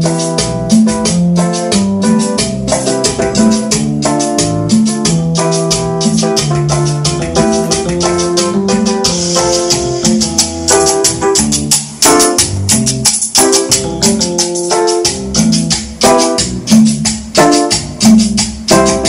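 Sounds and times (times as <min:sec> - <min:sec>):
keyboard melody: 0:00.0 - 0:19.0
percussion beat: 0:00.0 - 0:19.0.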